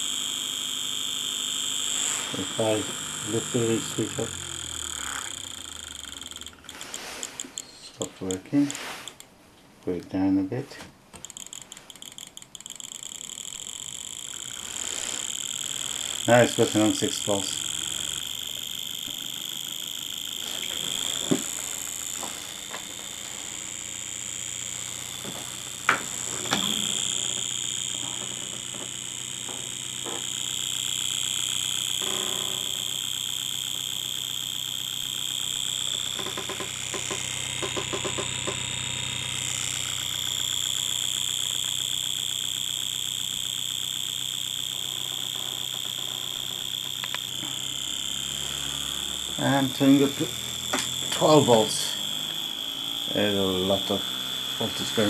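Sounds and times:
electric motor pulsing buzz: 0.0s - 9.4s, 10.0s - 55.0s
sharp clicks: 0.0s - 10.1s, 11.1s - 55.0s.

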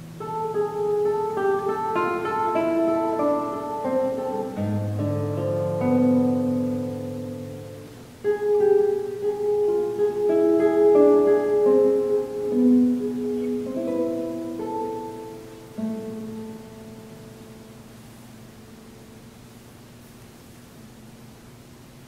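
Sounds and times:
classical guitar fingerstyle: 0.0s - 19.3s.

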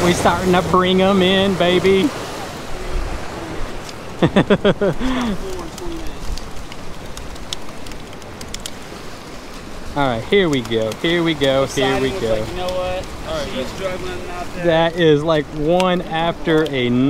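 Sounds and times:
surf washing against rocks: 0.0s - 17.0s.

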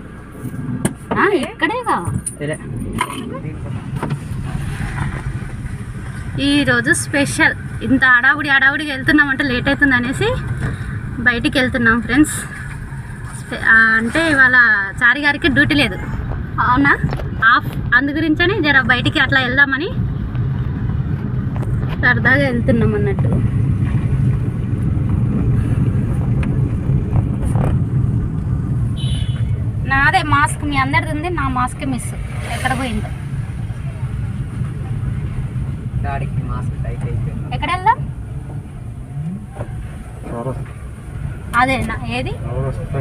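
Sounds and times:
car cabin rumble: 0.0s - 43.0s
woman talking: 1.1s - 2.2s, 6.4s - 10.5s, 11.2s - 12.5s, 13.3s - 20.0s, 22.0s - 23.5s, 29.8s - 33.2s, 36.0s - 38.1s, 41.5s - 42.4s.

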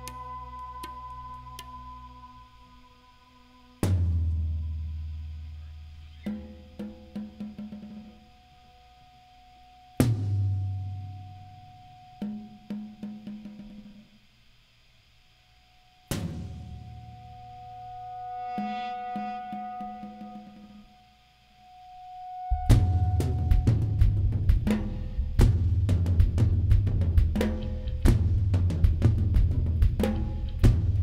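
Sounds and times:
quick drum strokes: 22.6s - 31.0s.

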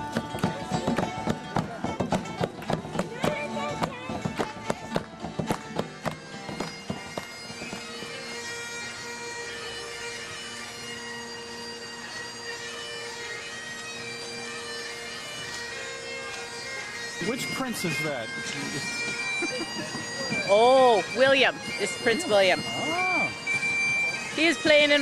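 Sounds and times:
bagpipes playing: 0.0s - 25.0s.

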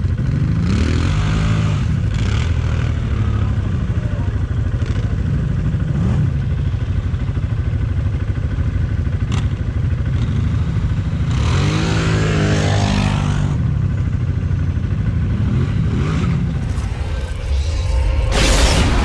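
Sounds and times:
quad bike engine idling: 0.0s - 16.6s.

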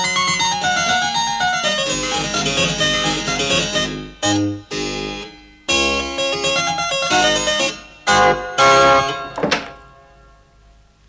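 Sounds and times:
keyboard chord: 0.0s - 10.5s
door shutting thunk: 9.3s - 9.9s.

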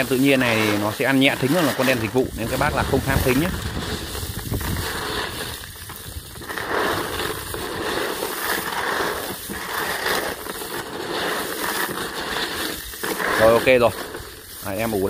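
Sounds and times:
snail shells rattling: 0.0s - 15.0s.

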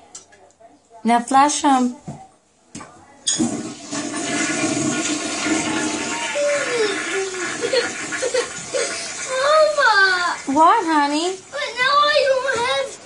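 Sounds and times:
toilet flushing: 3.4s - 13.0s
small child crying: 6.0s - 7.6s.

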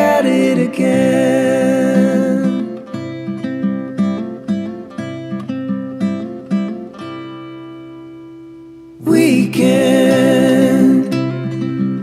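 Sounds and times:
acoustic guitar picked: 0.0s - 12.0s.

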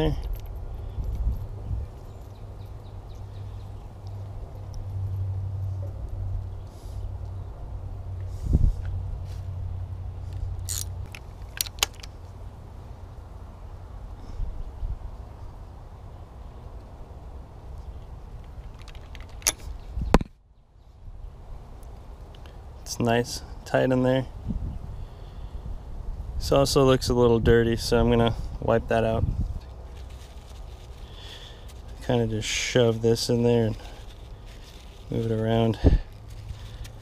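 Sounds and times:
ratchet wrench clicking: 10.6s - 12.1s.

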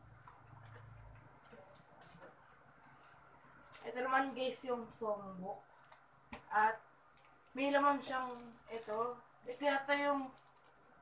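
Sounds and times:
paper rustling: 7.9s - 10.8s.

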